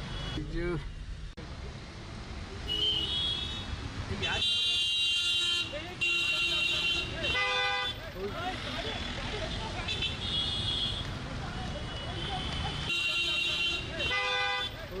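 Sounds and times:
traffic noise: 0:00.0 - 0:15.0
vehicle horns honking: 0:02.7 - 0:08.1, 0:09.0 - 0:11.1, 0:11.8 - 0:15.0.

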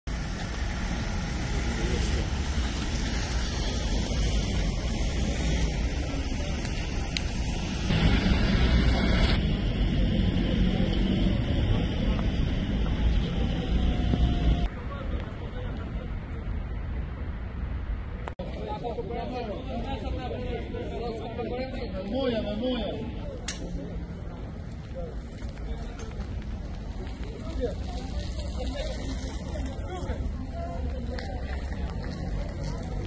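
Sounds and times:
wind rumbling on microphone: 0:00.1 - 0:18.4
indistinct voices: 0:01.3 - 0:16.7.

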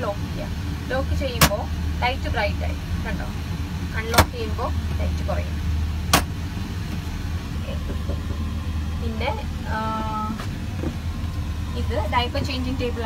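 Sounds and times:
airliner cabin hum: 0:00.0 - 0:13.0.

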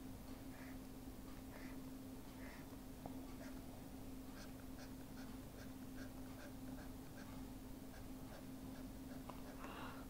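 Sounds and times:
steady low hum: 0:00.0 - 0:10.0
stylus scratching on pen tablet: 0:04.4 - 0:09.6.

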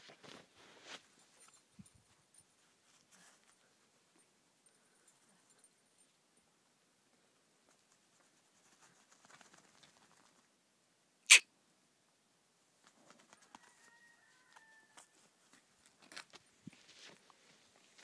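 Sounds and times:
sharp squawk-like cry: 0:11.3 - 0:11.5.

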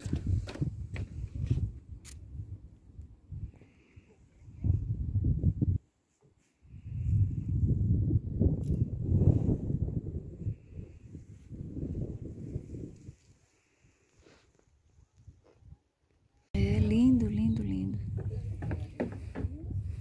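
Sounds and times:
wind buffeting microphone: 0:00.0 - 0:05.9, 0:06.7 - 0:13.3, 0:16.6 - 0:20.0
faint knocks: 0:18.0 - 0:19.7.

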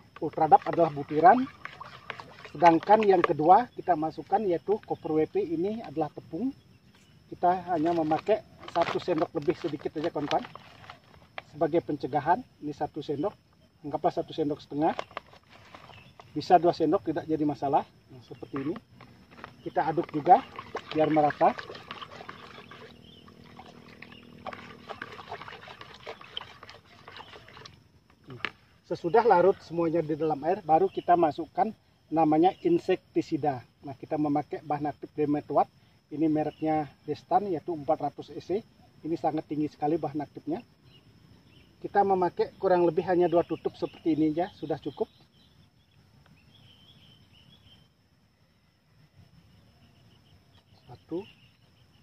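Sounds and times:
water sloshing: 0:00.0 - 0:05.1, 0:18.1 - 0:29.0
bird chirping softly: 0:00.0 - 0:52.0
high-pitched insect drone: 0:00.0 - 0:52.0
stick knocking against bucket: 0:00.2 - 0:03.4.

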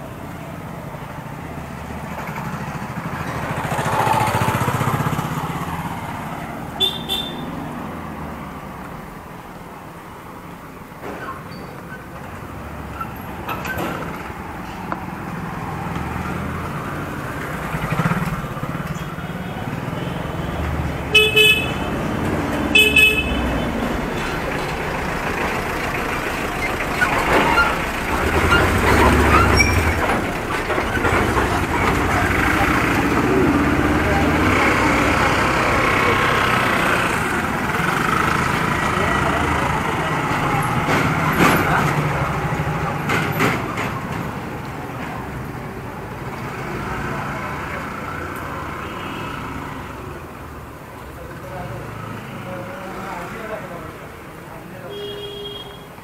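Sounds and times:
motor vehicles passing: 0:00.0 - 0:54.9
short horn honks: 0:06.8 - 0:07.5, 0:54.9 - 0:55.9.

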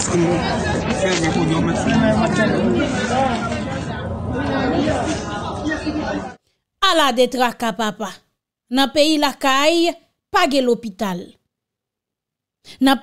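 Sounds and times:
chatter of voices: 0:00.0 - 0:06.4.

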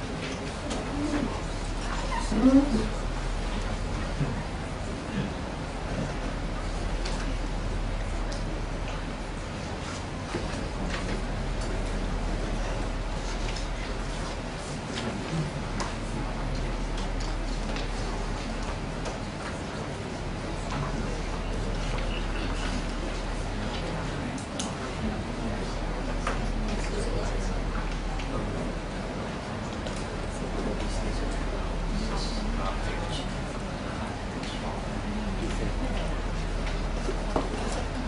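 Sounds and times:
low mains hum: 0:00.0 - 0:38.0.

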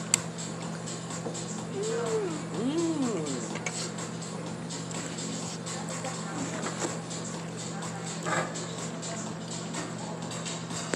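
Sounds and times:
restaurant hum: 0:00.0 - 0:10.9.

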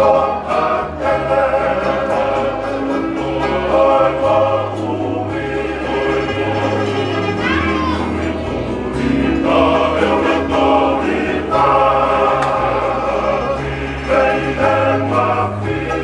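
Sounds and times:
men's chorus singing in harmony: 0:00.0 - 0:07.4, 0:08.2 - 0:16.0
steady bass: 0:00.0 - 0:16.0
strummed acoustic guitars: 0:00.0 - 0:16.0.

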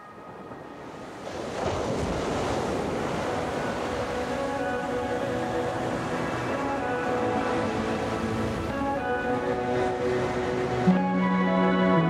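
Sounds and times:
ocean waves breaking: 0:00.0 - 0:12.0.

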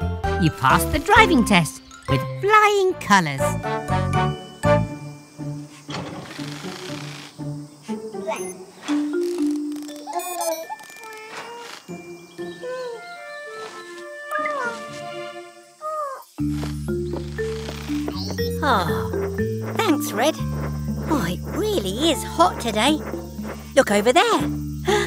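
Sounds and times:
light background music: 0:00.0 - 0:10.7, 0:16.4 - 0:25.0
sliding beeping electronic notes: 0:08.3 - 0:12.2, 0:16.6 - 0:24.0.

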